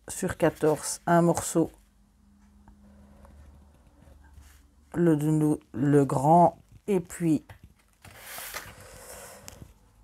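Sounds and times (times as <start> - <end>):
board scraping across paper: 8.0 - 9.7.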